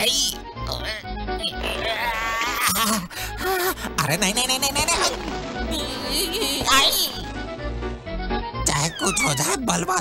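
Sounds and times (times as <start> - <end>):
cartoon background music: 0.0 - 10.0
wobbling cartoon vocal noises: 1.6 - 3.1, 8.7 - 9.6.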